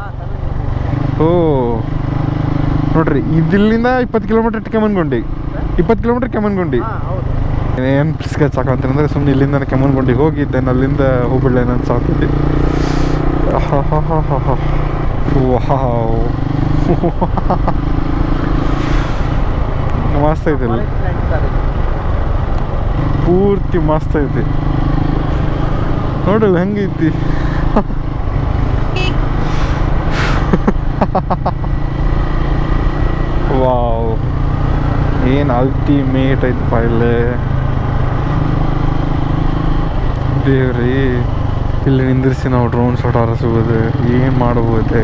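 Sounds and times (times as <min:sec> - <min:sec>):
motorcycle engine running: 0:00.0 - 0:45.0
wind and road noise: 0:00.0 - 0:45.0.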